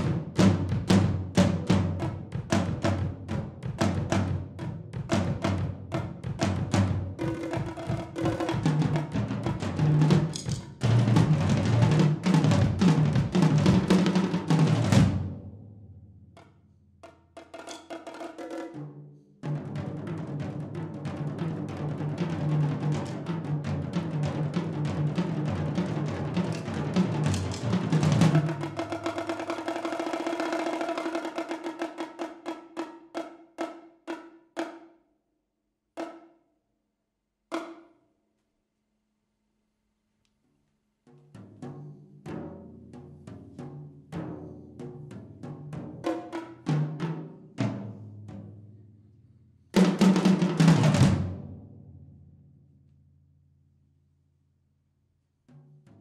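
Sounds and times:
bongos and tom-toms played with sticks: 0:00.0 - 0:35.0, 0:36.0 - 0:36.4, 0:37.5 - 0:38.0, 0:41.1 - 0:48.9, 0:49.7 - 0:52.4, 0:55.5 - 0:56.0.

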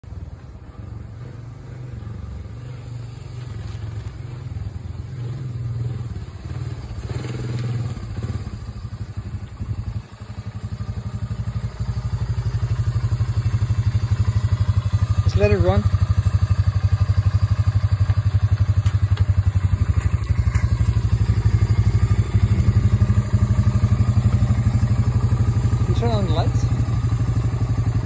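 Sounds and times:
quad bike engine putter: 0:05.7 - 0:10.0, 0:10.8 - 0:28.0.

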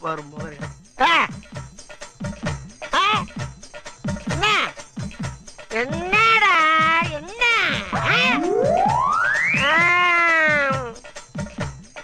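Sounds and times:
comic film music: 0:02.3 - 0:11.6.

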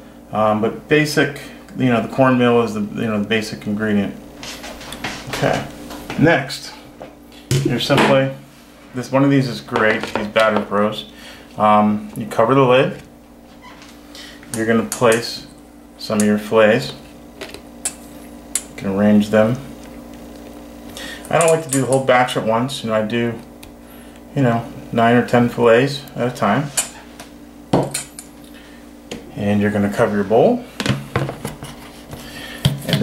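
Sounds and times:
steady low hum: 0:00.0 - 0:33.0.

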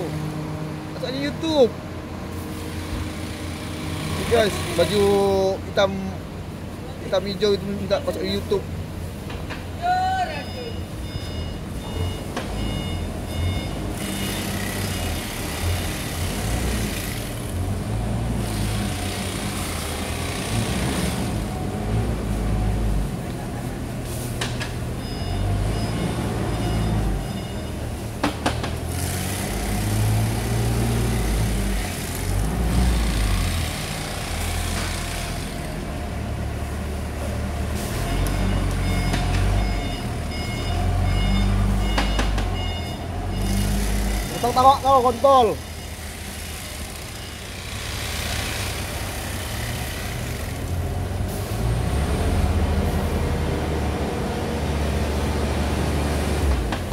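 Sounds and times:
electronic beeping: 0:10.3 - 0:14.8, 0:25.0 - 0:28.0, 0:38.0 - 0:46.1.

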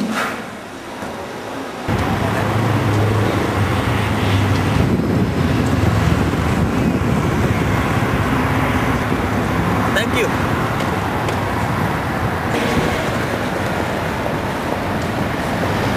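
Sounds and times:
city traffic noise: 0:00.0 - 0:15.9.

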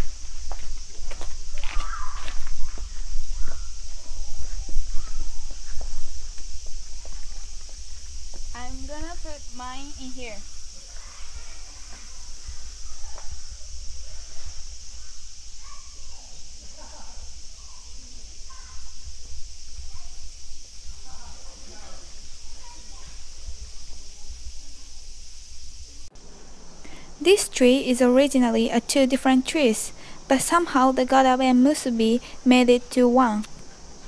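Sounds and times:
steady high hiss: 0:00.0 - 0:34.0
faint murmured voices: 0:01.8 - 0:25.3.

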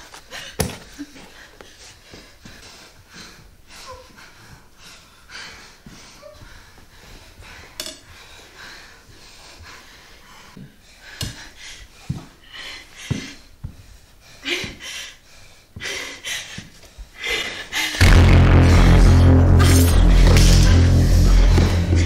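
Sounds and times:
person breathing hard: 0:00.2 - 0:18.1
loud bass-heavy music: 0:18.0 - 0:22.0.

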